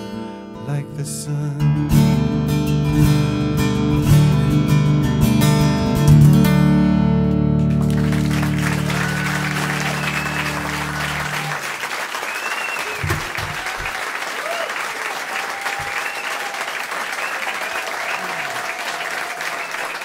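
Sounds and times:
audience applauding: 7.6 - 20.0
whoops: 8.0 - 20.0.

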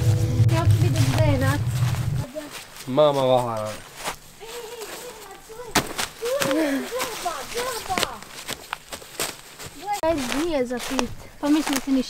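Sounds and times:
footsteps crunching on dry leaves: 0.2 - 12.0
twigs snapping: 3.6 - 12.0.

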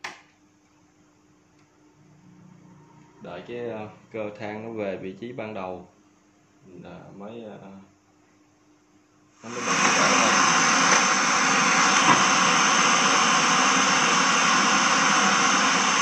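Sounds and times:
radio static hiss: 9.4 - 16.0.

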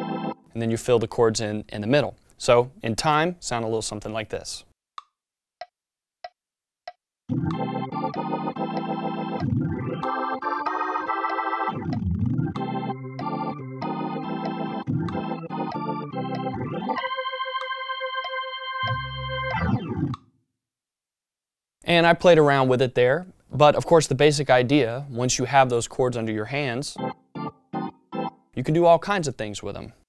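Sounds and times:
drawbar organ chords: 0.0 - 0.4, 7.3 - 20.2, 26.9 - 28.5
metronome clicks: 10.5 - 18.4.

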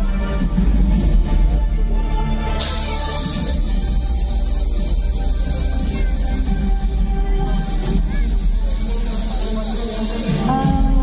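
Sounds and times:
loud music with deep bass: 0.0 - 11.0
gas jets hissing: 2.4 - 10.9.

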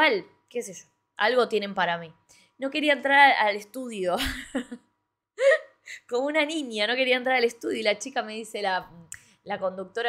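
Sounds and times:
woman laughing: 4.2 - 6.0.

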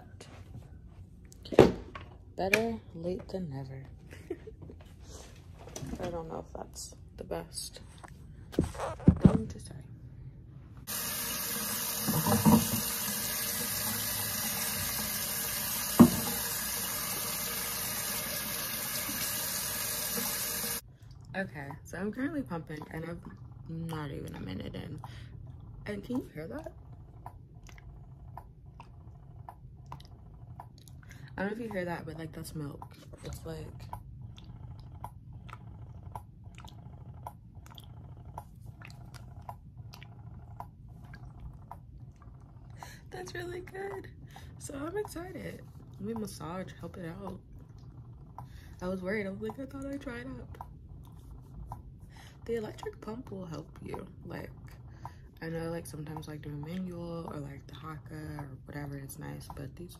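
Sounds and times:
breast pump humming: 4.1 - 59.9
faucet running into steel sink: 10.9 - 20.8
wet squishing clicks: 26.8 - 31.8, 32.7 - 42.9.

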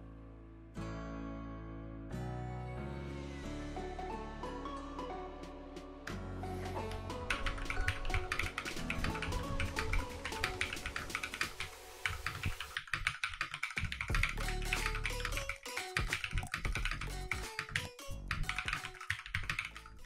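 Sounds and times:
background music: 0.0 - 12.9, 14.1 - 20.0
mechanical keyboard typing: 7.3 - 20.0.

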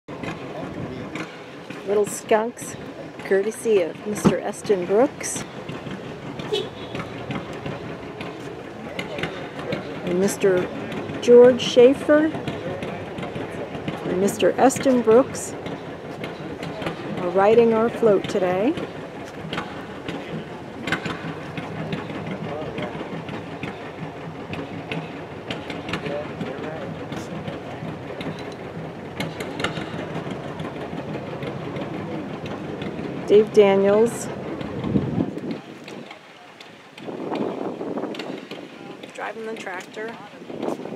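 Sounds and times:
low engine hum: 0.1 - 40.9
faint voices: 0.3 - 40.9.

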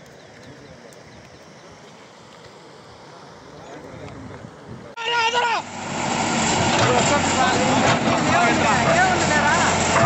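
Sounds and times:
backhoe engine humming: 5.2 - 10.0.

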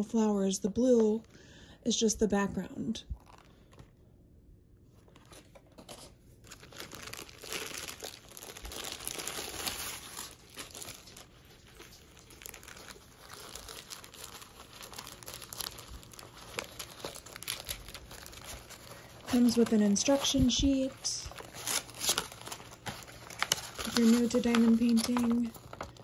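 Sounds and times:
plastic film crinkling: 3.0 - 4.0, 4.9 - 26.0.

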